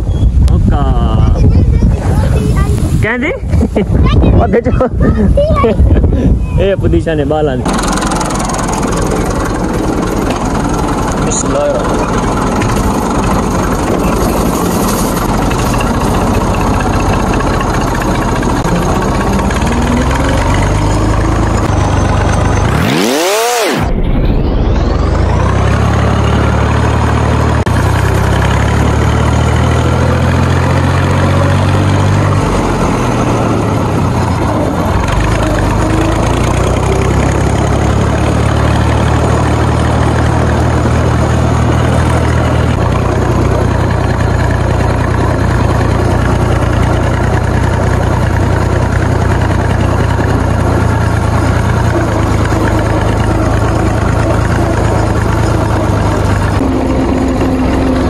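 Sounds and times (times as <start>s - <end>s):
tractor diesel engine running: 0.0s - 58.0s.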